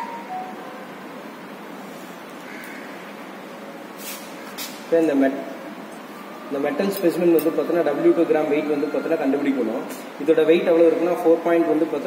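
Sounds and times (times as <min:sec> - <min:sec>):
steady room hiss: 0:00.0 - 0:12.0.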